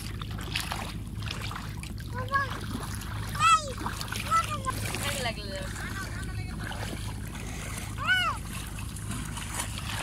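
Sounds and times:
feet splashing through water: 0.0s - 10.0s
child's high-pitched calls: 8.0s - 8.4s.

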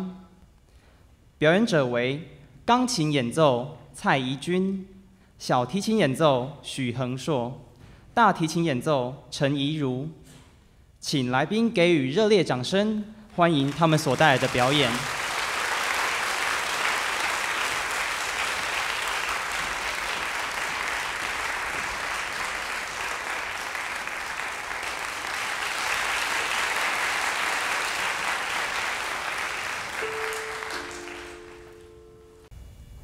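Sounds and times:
audience applauding: 13.5s - 32.0s.

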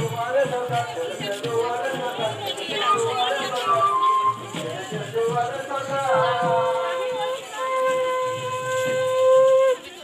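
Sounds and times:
conch shell blown: 7.6s - 9.8s.

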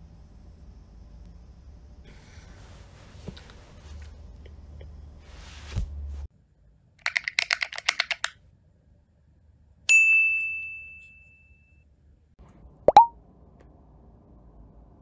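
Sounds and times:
bright bell-like ding: 9.9s - 11.6s.

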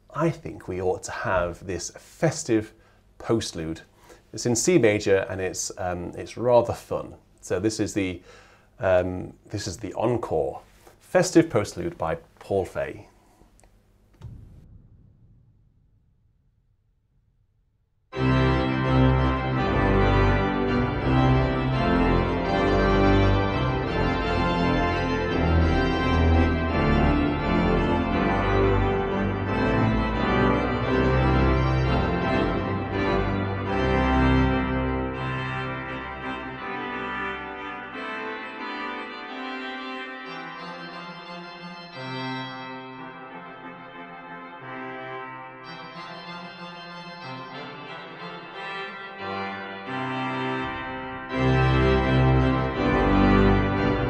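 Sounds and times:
deep organ pedal notes: 18.1s - 54.0s
pipe organ playing loud chords: 18.1s - 54.0s.

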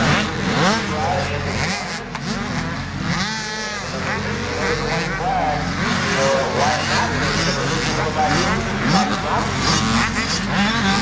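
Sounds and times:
dirt bike engines revving: 0.0s - 11.0s.

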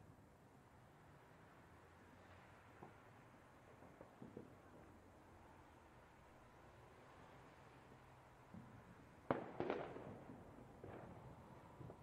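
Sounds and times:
fireworks bangs and cracks: 9.3s - 11.2s.

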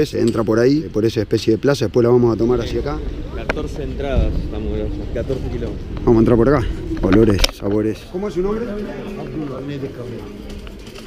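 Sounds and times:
background market chatter: 0.0s - 11.0s.

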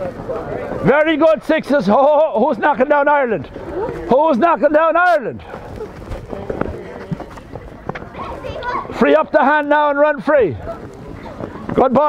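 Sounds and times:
children's running footsteps: 0.0s - 12.0s
faint voices: 0.0s - 12.0s.

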